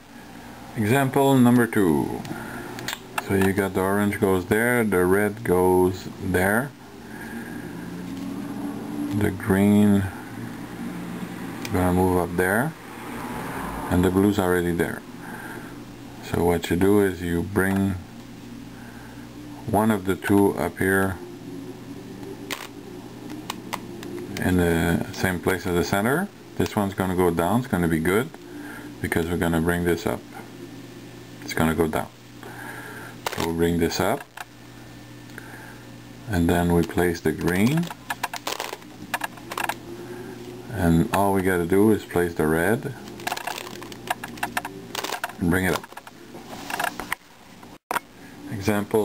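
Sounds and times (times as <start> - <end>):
faint steady hum: 0.0 - 49.0
puzzle cube layers clicking: 37.4 - 39.8, 43.1 - 46.1.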